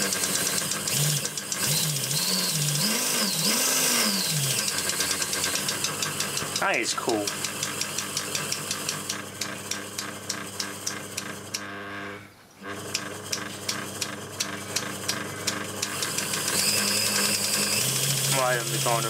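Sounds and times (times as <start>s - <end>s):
small motor running: 0.0s - 19.0s.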